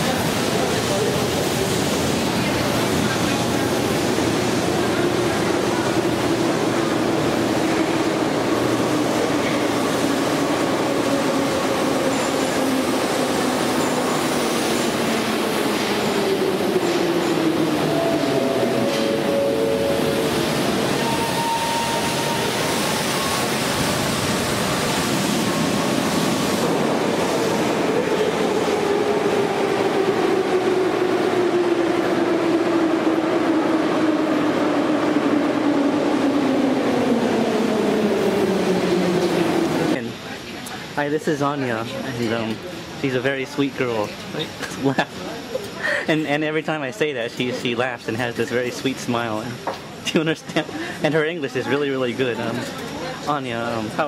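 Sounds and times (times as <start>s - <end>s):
train rumbling: 0.0s - 54.0s.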